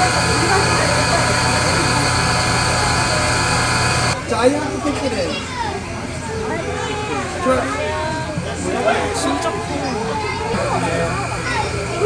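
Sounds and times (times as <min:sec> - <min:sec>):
children chattering: 0:00.0 - 0:12.0
people's voices: 0:00.0 - 0:12.0
steady hum of held tones: 0:00.0 - 0:12.0.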